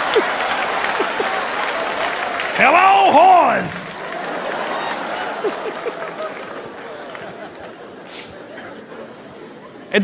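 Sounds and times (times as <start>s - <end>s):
audience applauding: 0.0s - 8.0s.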